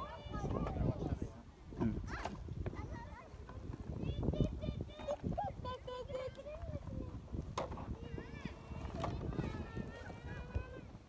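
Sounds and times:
young children's voices: 0.0 - 11.0.

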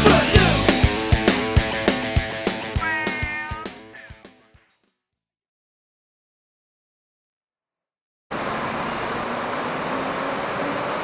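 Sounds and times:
street noise with passing traffic: 8.3 - 11.0.

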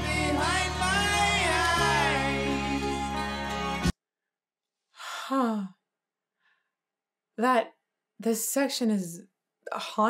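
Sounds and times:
woman sighing: 5.0 - 5.8.

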